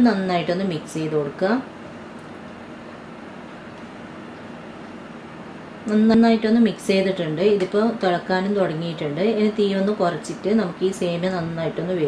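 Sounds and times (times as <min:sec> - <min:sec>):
steady low hiss and hum: 0:00.0 - 0:12.0.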